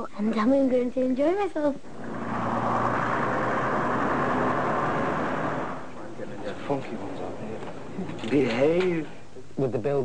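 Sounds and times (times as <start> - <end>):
bus driving past: 1.9 - 6.1.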